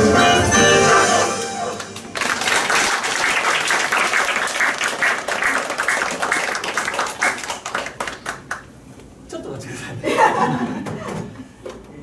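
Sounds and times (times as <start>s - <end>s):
music: 0.0s - 2.2s
audience applauding: 1.4s - 8.7s.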